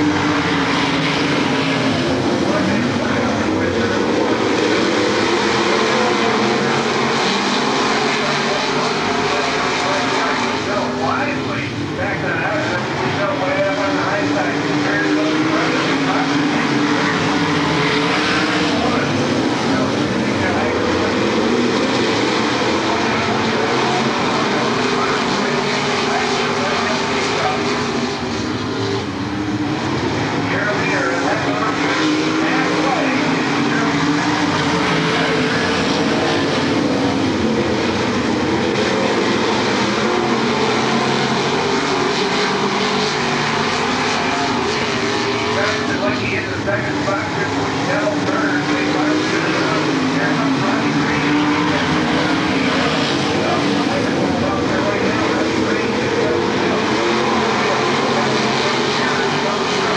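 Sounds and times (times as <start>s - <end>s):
race car engines roaring past: 0.0s - 59.9s.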